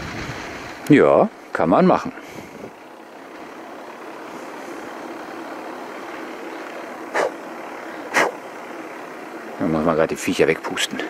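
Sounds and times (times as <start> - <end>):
bicycle rolling on asphalt: 0.0 - 11.0.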